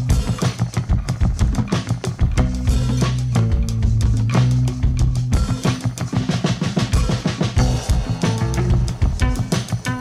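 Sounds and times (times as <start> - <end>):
drum fill: 0.0 - 10.0
sustained bass notes: 2.3 - 5.6, 7.6 - 9.5.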